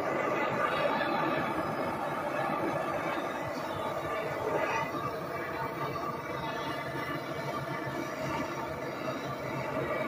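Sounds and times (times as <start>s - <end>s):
propane torch flame hissing: 0.0s - 10.0s.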